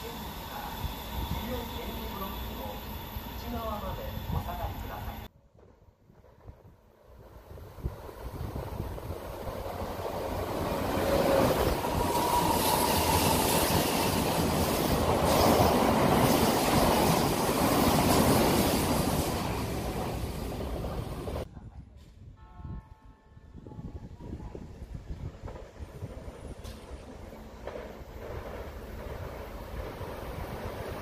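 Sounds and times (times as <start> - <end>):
train wheels rumbling on rails: 6.2 - 22.2, 24.3 - 31.0.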